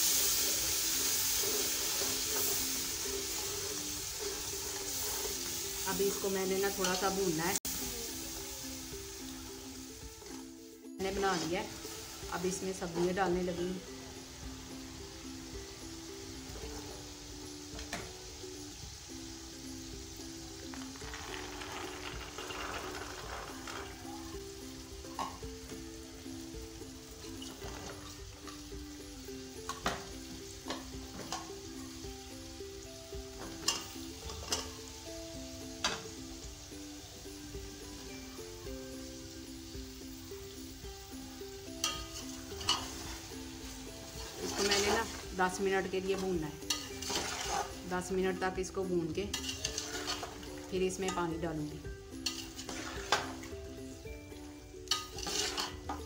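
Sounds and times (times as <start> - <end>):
soft background music: 0.0 - 56.0
vegetables sizzling in oil: 0.0 - 56.0.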